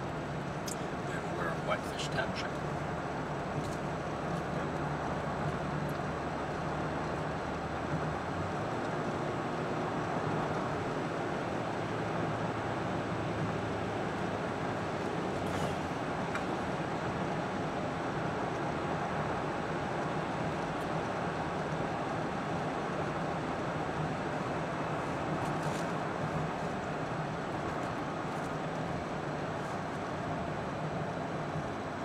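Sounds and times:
car road and engine noise: 0.0 - 32.0.

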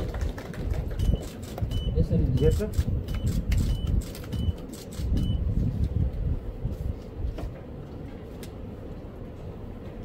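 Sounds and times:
low room rumble: 0.0 - 10.0
high focus beeps: 1.0 - 4.6, 5.2 - 5.4
camera shutter clicks: 2.5 - 5.3.

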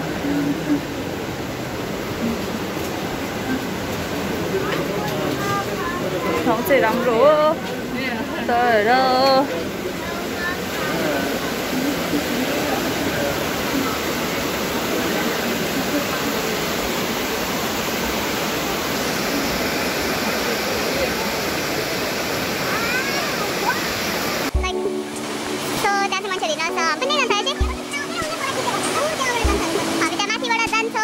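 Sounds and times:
whitewater river rushing: 0.0 - 31.0
music with voices: 24.6 - 31.0.

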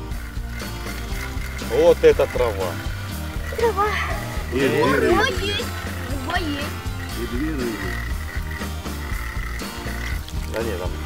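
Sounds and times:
frogs croaking: 0.0 - 11.0.

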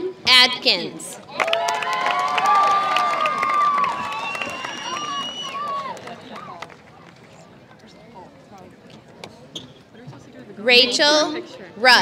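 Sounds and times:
low crowd murmur: 2.9 - 12.0.

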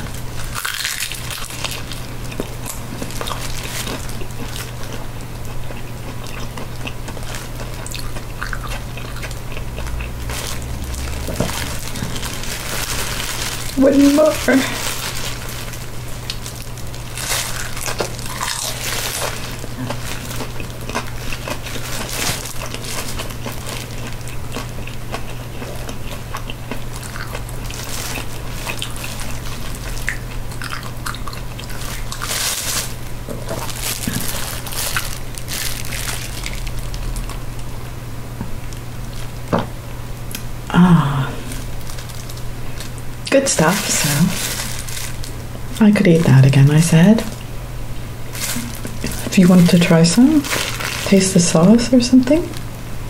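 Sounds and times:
crunchy chewing: 0.0 - 37.7, 48.3 - 49.7
steady low hum: 0.0 - 53.0.

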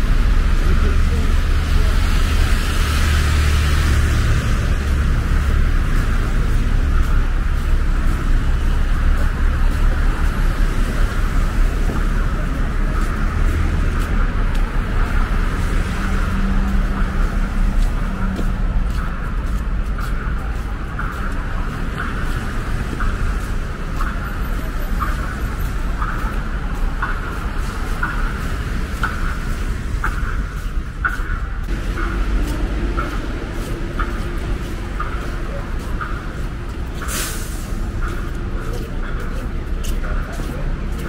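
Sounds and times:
road traffic: 0.0 - 41.0.

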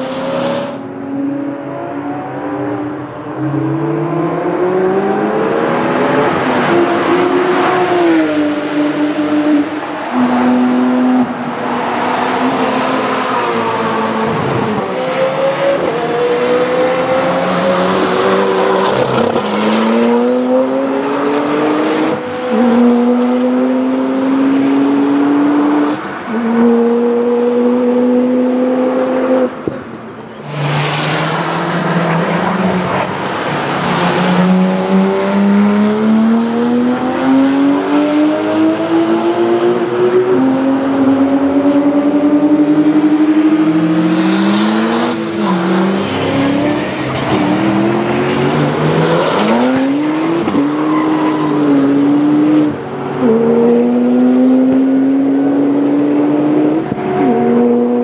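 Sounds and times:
car engines accelerating hard: 0.0 - 58.0.

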